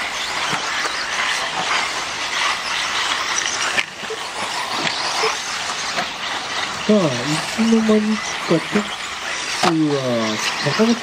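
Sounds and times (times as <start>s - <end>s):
rc buggy drivetrain whine: 0.0s - 11.0s
tyres on dirt: 0.0s - 11.0s.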